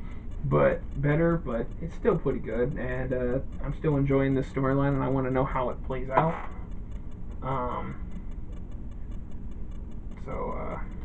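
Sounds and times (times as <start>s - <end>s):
fast regular ticking: 0.0s - 11.0s
low background hum: 0.0s - 11.0s.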